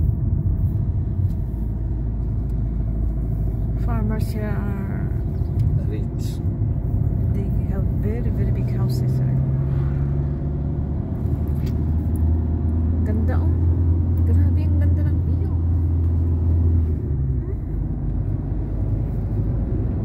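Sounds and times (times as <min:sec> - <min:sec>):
car engine and road drone: 0:00.0 - 0:20.0.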